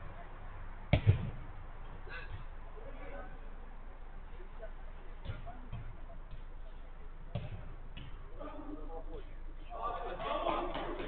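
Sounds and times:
football kicked hard: 0:00.9 - 0:01.5, 0:07.3 - 0:08.2.

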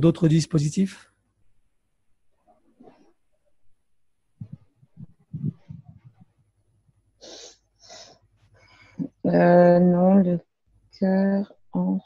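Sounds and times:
person sniffing: 0:07.2 - 0:08.1.

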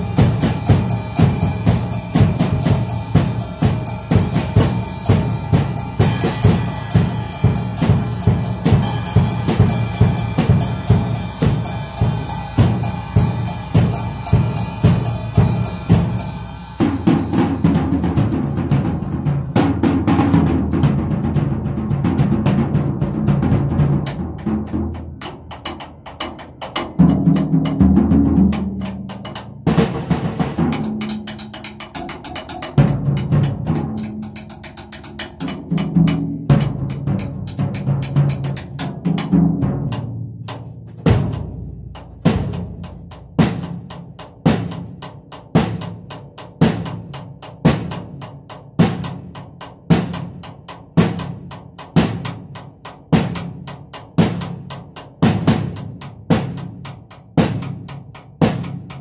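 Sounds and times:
drum kit playing: 0:00.0 - 0:59.0.

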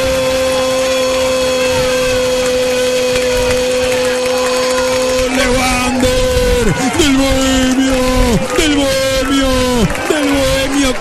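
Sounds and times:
man shouting long goal cry: 0:00.0 - 0:11.0.

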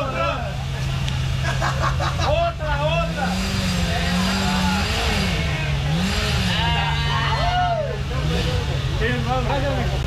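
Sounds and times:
motorcycle engine idling and revving: 0:00.0 - 0:10.0
people talking: 0:00.0 - 0:10.0.

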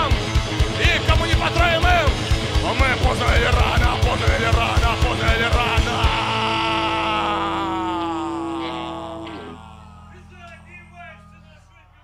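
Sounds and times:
fast drumming: 0:00.0 - 0:07.0
punk rock band playing: 0:00.0 - 0:10.8.

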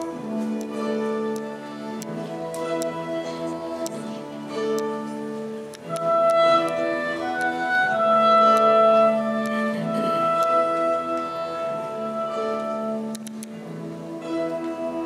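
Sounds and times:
slow live folk instrumental music: 0:00.0 - 0:15.0.

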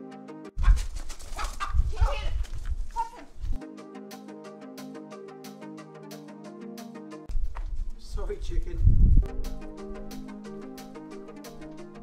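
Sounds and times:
background music: 0:00.0 - 0:00.6, 0:03.6 - 0:07.3, 0:09.2 - 0:12.0
wind rumble on microphone: 0:00.6 - 0:03.6, 0:07.3 - 0:09.3.

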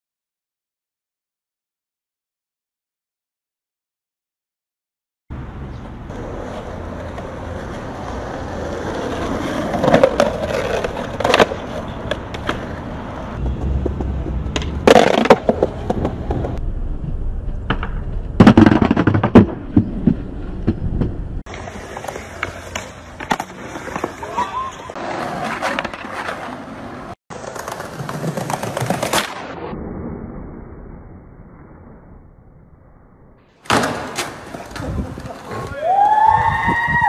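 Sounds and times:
skateboard wheels rolling on concrete: 0:05.3 - 0:32.3, 0:33.5 - 0:37.0
skateboard knocks and cracks: 0:08.6 - 0:12.8, 0:13.4 - 0:16.6, 0:17.6 - 0:24.4, 0:33.6 - 0:35.7.

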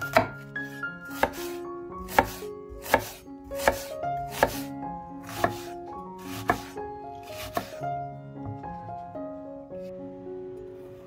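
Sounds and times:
knife chopping on wooden board: 0:00.0 - 0:00.4, 0:01.2 - 0:07.8.

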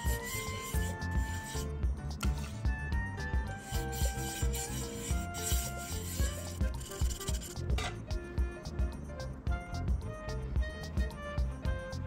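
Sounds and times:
paintbrush scrubbing on wood: 0:00.0 - 0:01.6, 0:03.6 - 0:07.6
background music with a beat: 0:00.0 - 0:12.0.

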